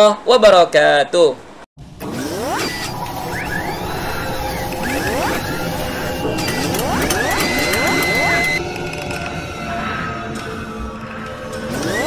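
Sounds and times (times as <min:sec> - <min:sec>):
rising whooshes: 0:01.8 - 0:12.0
mechanical whirring and clicking: 0:02.0 - 0:09.4, 0:10.4 - 0:12.0
steady high tone: 0:02.1 - 0:12.0.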